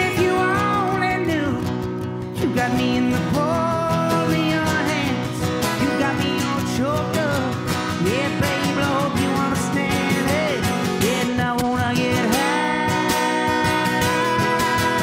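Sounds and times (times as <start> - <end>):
wordless singing melody: 0.0 - 1.6, 2.4 - 15.0
acoustic guitar strummed: 0.0 - 15.0.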